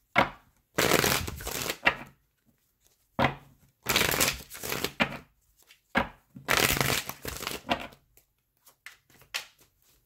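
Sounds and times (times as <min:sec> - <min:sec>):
cards being shuffled: 0:00.8 - 0:02.0, 0:03.8 - 0:05.9, 0:06.5 - 0:10.0.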